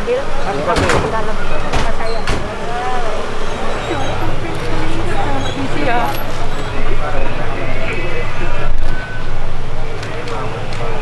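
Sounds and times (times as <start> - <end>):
background voices: 0.0 - 11.0
low engine rumble: 0.0 - 11.0.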